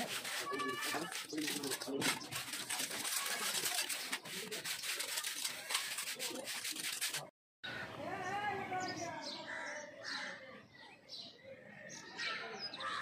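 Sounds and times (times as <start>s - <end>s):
trowel scraping wet mortar: 0.0s - 7.3s.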